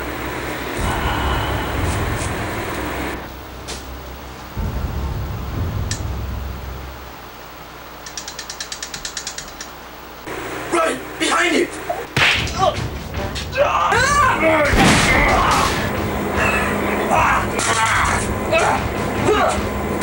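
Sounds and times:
low hum and hiss: 0.0 - 20.0
mechanical ratcheting clicks: 8.0 - 9.7.

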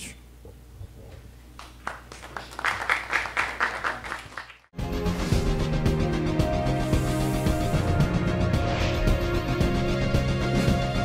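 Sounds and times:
audience applauding: 1.6 - 4.7
music: 4.7 - 11.0.

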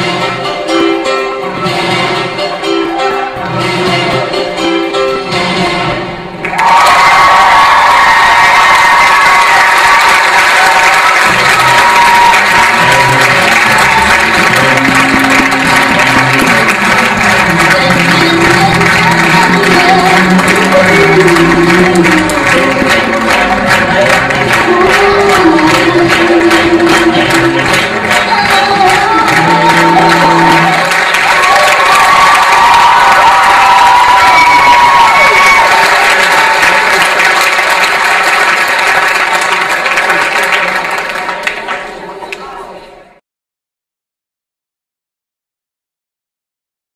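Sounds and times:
music: 0.0 - 41.2
audience applauding and cheering: 6.4 - 42.4.

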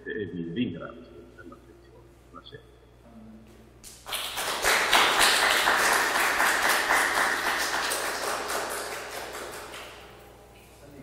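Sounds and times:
audience applauding: 4.0 - 10.1.

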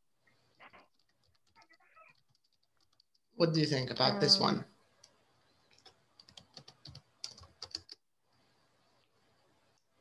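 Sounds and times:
keyboard typing: 0.5 - 3.3, 5.0 - 8.1.

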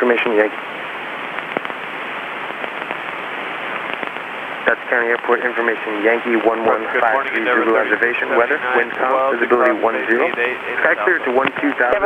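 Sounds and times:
radio hiss with crackles: 0.0 - 12.0.

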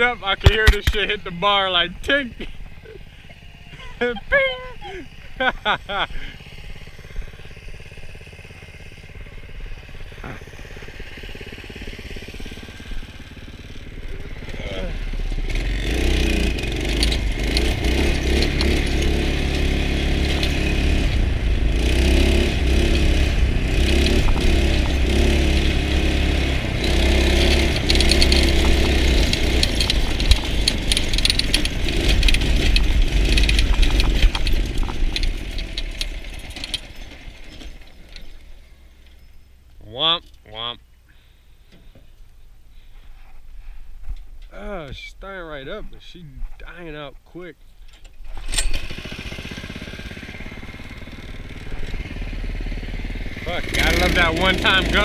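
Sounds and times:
go-kart engine running: 0.0 - 43.0, 47.9 - 55.0.

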